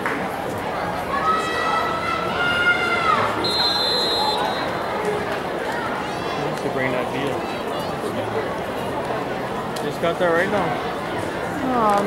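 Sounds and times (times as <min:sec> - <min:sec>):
referee's whistle: 0:03.4 - 0:04.8.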